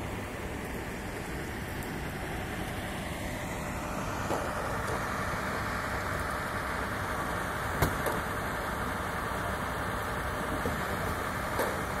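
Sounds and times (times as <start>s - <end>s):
vehicle engines idling: 0.0s - 12.0s.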